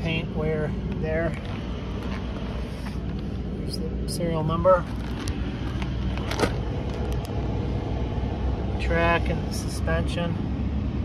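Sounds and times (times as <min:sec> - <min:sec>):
steady low rumble: 0:00.0 - 0:11.0
footsteps crunching on gravel: 0:00.9 - 0:03.4, 0:04.8 - 0:07.3.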